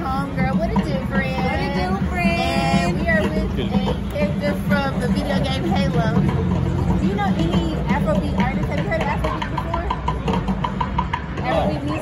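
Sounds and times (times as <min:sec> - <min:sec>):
low rumble of street traffic: 0:00.0 - 0:12.0
people's voices: 0:00.0 - 0:12.0.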